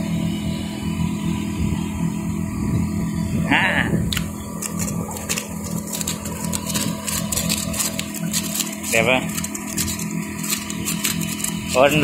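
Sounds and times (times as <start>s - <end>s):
aerator motor hum: 0.0s - 12.0s.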